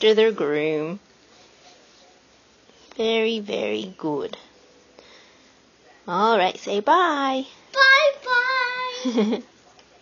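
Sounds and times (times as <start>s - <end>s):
child singing: 7.8s - 9.0s.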